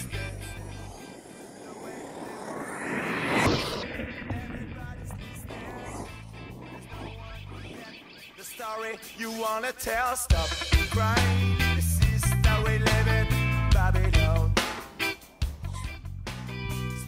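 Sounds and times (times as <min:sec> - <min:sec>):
rc truck passing by: 0:00.0 - 0:09.0
background music: 0:08.5 - 0:17.0.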